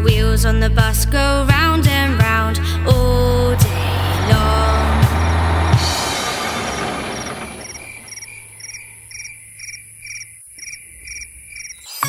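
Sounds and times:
song music: 0:02.9 - 0:06.7
crickets chirping: 0:03.9 - 0:12.0.

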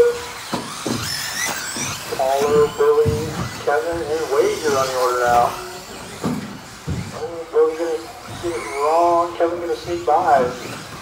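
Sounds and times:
faint low thuds: 0:01.8 - 0:07.3
man talking: 0:02.0 - 0:05.8, 0:07.1 - 0:10.8.

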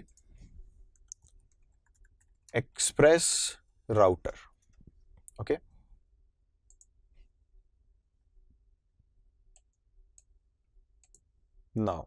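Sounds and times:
faint computer clicks: 0:06.7 - 0:07.0.

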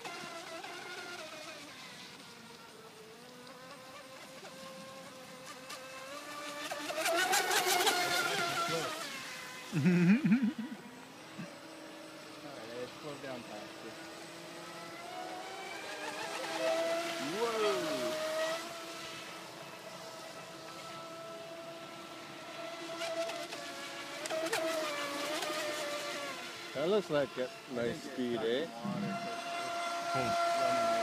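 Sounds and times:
rc speedboat motor whine: 0:00.0 - 0:31.0.

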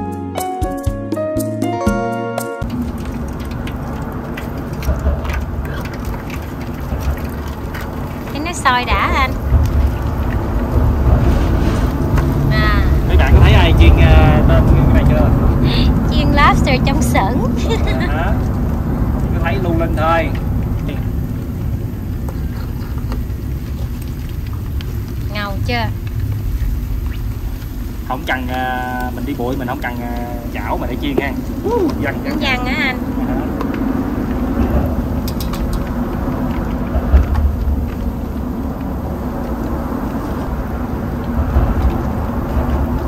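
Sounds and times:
food deep-frying in oil: 0:02.6 - 0:43.0.

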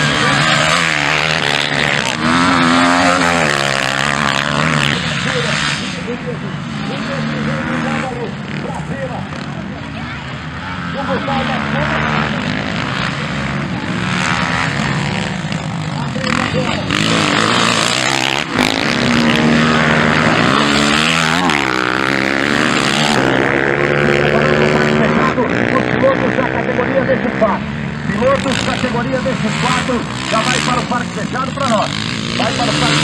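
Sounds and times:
dirt bike engines revving: 0:00.0 - 0:33.0.

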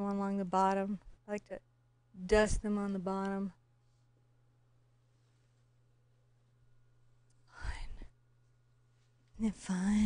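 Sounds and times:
steady low hum: 0:00.0 - 0:10.0
person whispering: 0:07.5 - 0:08.1.

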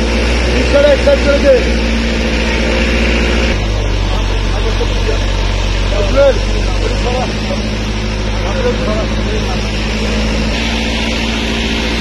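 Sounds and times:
auto-rickshaw engine running: 0:00.0 - 0:12.0.

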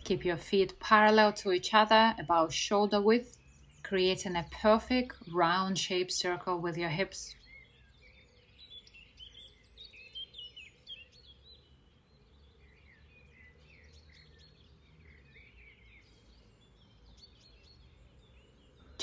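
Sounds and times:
small birds chirping: 0:00.0 - 0:19.0.

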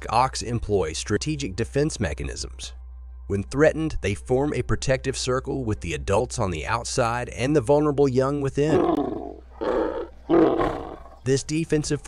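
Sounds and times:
animal roaring: 0:08.7 - 0:11.3.

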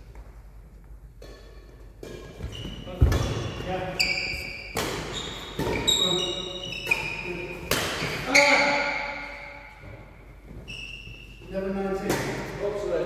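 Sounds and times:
racket hitting shuttlecock: 0:01.1 - 0:10.2, 0:12.0 - 0:12.6
shoes squeaking on wooden floor: 0:02.2 - 0:07.4, 0:09.7 - 0:11.6.

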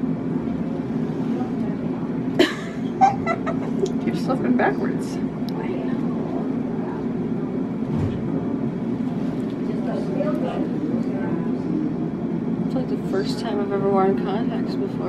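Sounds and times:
mechanical hum of equipment: 0:00.0 - 0:15.0
faint low voices: 0:00.5 - 0:07.9, 0:08.5 - 0:15.0.

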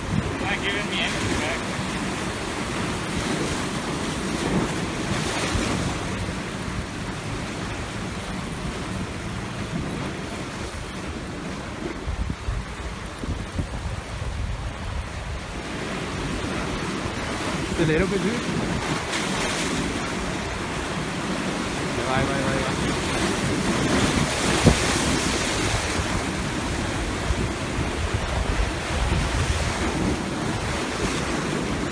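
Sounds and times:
surf breaking against rocks: 0:00.0 - 0:31.9
wind buffeting microphone: 0:00.0 - 0:31.9.

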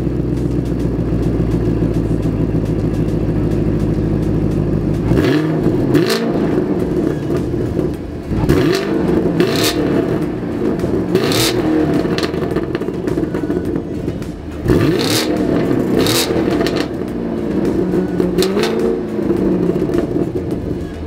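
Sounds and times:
car engine idling and revving: 0:00.0 - 0:21.0.

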